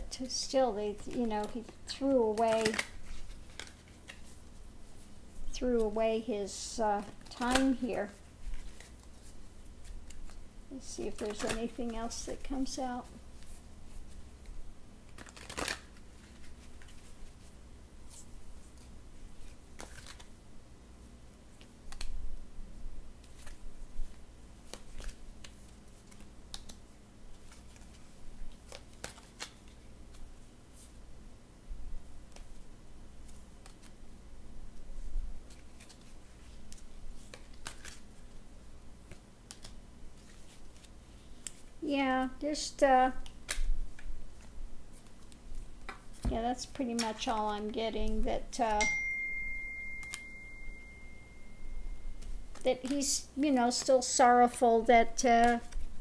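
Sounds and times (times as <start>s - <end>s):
cards clicking and sliding: 1.0s - 4.4s, 7.0s - 7.9s, 11.0s - 12.8s, 15.1s - 17.4s, 18.1s - 20.3s, 23.2s - 23.6s, 24.6s - 30.3s, 33.2s - 34.0s, 35.4s - 38.1s, 39.0s - 41.6s, 43.2s - 47.7s, 50.0s - 50.4s, 55.2s - 55.9s
faint high-pitched tone: 48.6s - 52.4s
card snaps: 50.0s - 50.3s.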